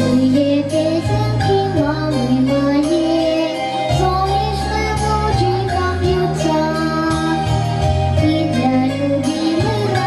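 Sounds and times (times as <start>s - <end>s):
backing track: 0.0s - 10.0s
girl singing into a microphone: 0.0s - 10.0s.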